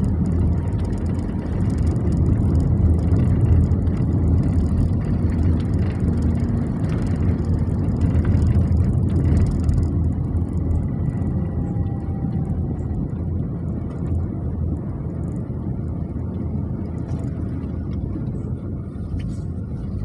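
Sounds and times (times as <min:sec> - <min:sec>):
car engine and tyre noise: 0:00.0 - 0:20.0.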